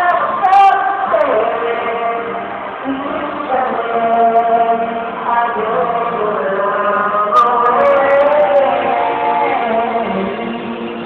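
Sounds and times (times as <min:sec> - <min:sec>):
man singing through microphone: 0:00.0 - 0:11.0.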